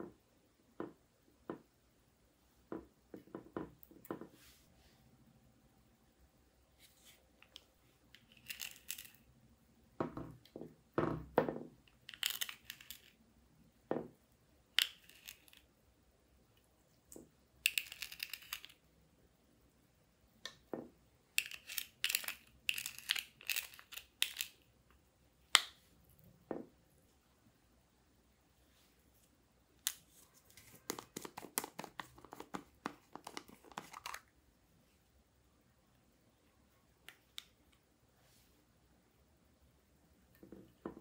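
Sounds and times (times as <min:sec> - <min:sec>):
makeup containers tapping and clicking: 0:30.8 - 0:34.2.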